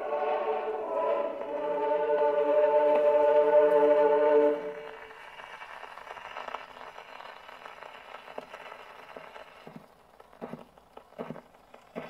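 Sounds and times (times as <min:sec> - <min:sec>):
choir holding a chord: 0:00.0 - 0:05.0
record surface hiss and crackle: 0:00.0 - 0:12.0.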